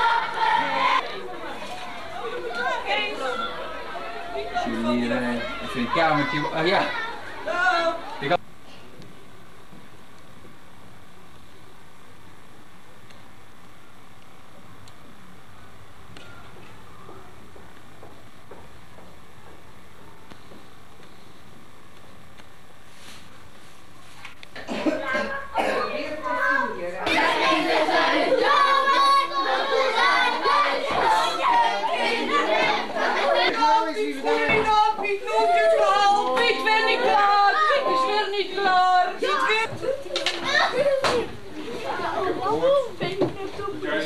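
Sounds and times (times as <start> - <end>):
children chattering: 0.0 - 8.4, 24.7 - 44.0
indistinct voices: 0.0 - 8.4, 24.6 - 44.0
person coughing: 24.6 - 25.9.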